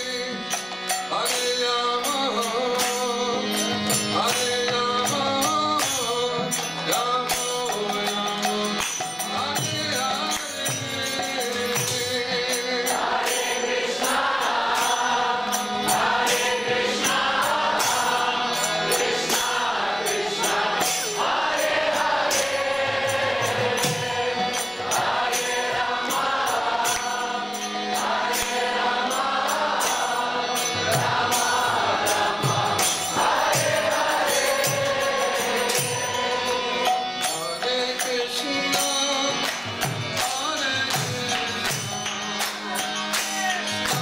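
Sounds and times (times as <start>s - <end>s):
hand cymbals struck: 0.0s - 44.0s.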